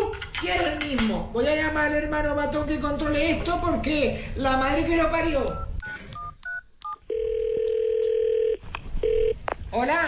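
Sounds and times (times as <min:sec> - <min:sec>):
telephone keypad beeps: 0:05.5 - 0:09.4
telephone ringback tone: 0:05.8 - 0:09.4.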